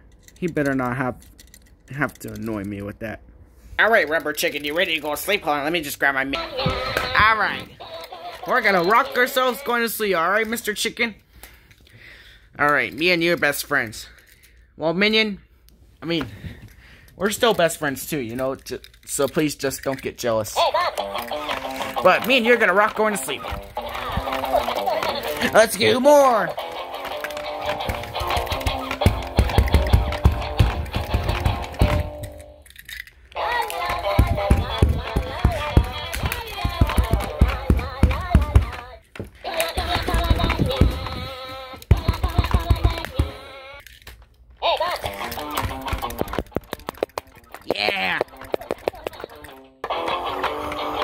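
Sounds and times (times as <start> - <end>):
toy guitar playing rock clips: 6.3 - 10.6, 19.4 - 44.0, 44.6 - 51.0.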